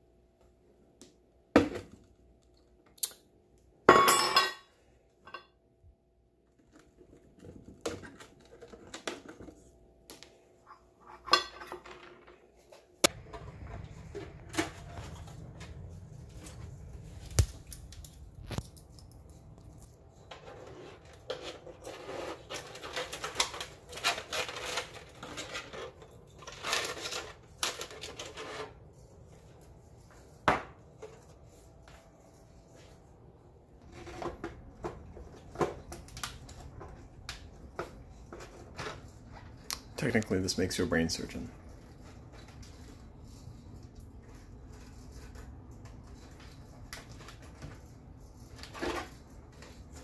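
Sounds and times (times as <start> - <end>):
low room rumble: 13.0 - 22.1.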